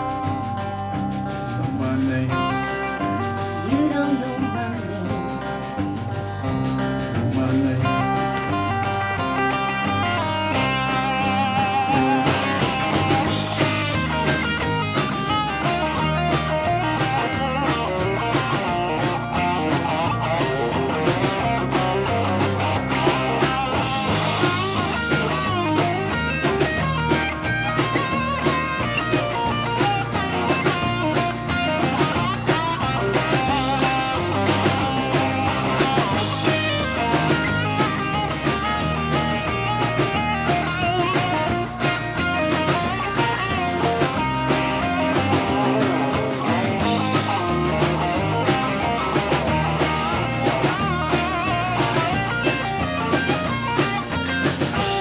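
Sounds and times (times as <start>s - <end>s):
bass guitar: 0.0s - 55.0s
electric guitar lead: 0.0s - 55.0s
steady drum beat: 0.0s - 55.0s.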